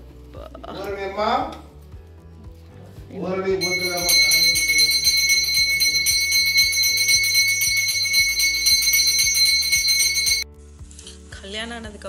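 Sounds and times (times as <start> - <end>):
hand bell ringing rapidly: 3.6 - 10.4.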